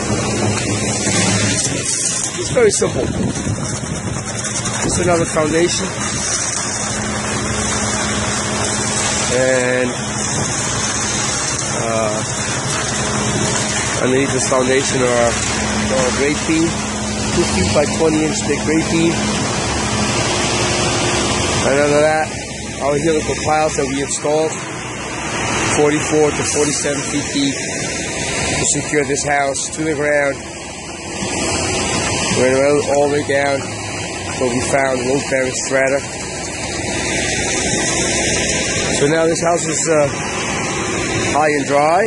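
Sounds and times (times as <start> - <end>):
truck engine running: 0.0 - 42.0
rushing hiss of pumped concrete: 0.1 - 29.7
man talking: 2.3 - 3.2, 4.8 - 6.0, 9.3 - 10.0, 11.7 - 12.3, 14.0 - 19.3, 21.6 - 24.6, 25.7 - 27.6, 28.6 - 30.4, 32.3 - 33.7, 34.4 - 36.1, 38.9 - 40.2, 41.3 - 42.0.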